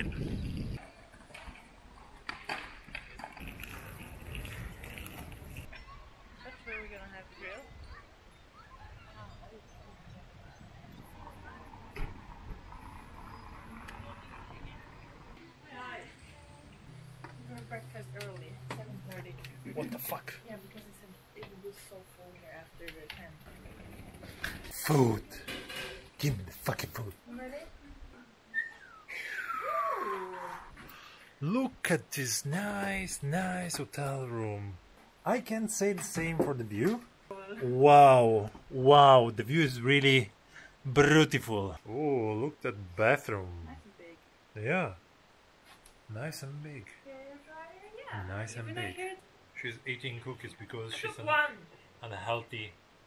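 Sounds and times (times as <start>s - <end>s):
street noise: 0.0s - 30.8s
person speaking: 31.4s - 37.0s.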